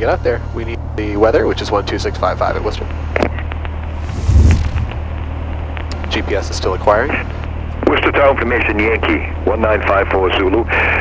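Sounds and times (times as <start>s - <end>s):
loud rumbling burst: 4.0s - 5.5s
aircraft engine idling: 4.8s - 11.0s.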